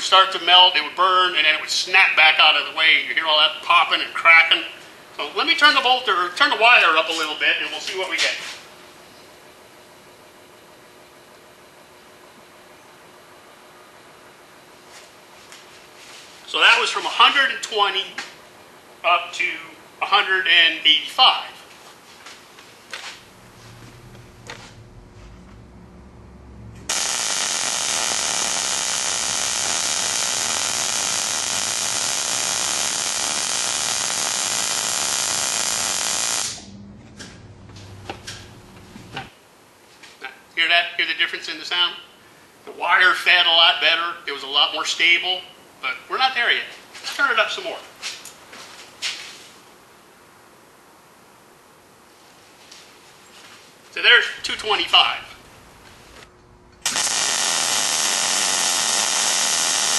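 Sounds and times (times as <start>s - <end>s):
faint room hiss: 0.0s - 59.9s
welder arc buzzing: 22.9s - 39.3s, 54.4s - 59.9s.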